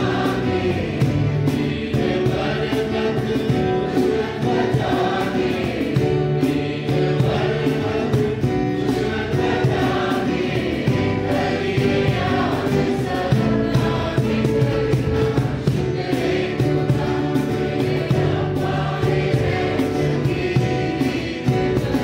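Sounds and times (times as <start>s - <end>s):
cajon beat: 0.0s - 22.0s
choir singing a hymn: 0.0s - 22.0s
strummed acoustic guitars: 0.0s - 22.0s.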